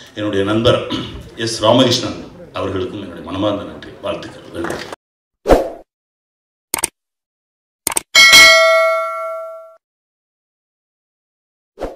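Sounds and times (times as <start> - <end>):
bright bell ding: 8.2 - 9.8.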